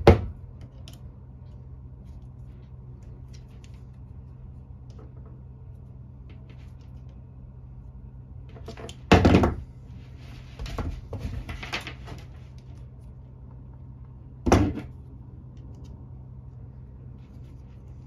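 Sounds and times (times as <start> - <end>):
rustling and clicking of wires: 0.0 - 7.5, 8.4 - 16.2
steady low hum: 0.0 - 18.0.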